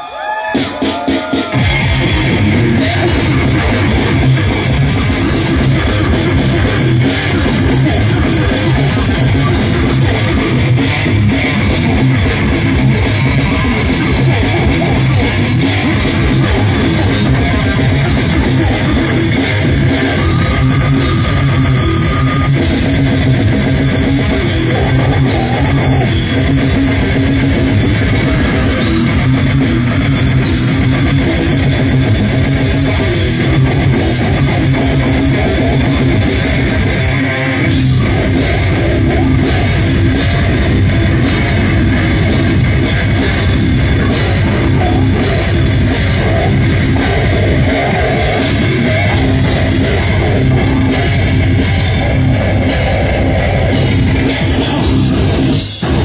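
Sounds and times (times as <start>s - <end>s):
distorted guitar: 0.0s - 56.0s
fast drum kit: 0.5s - 56.0s
bass guitar: 0.6s - 56.0s.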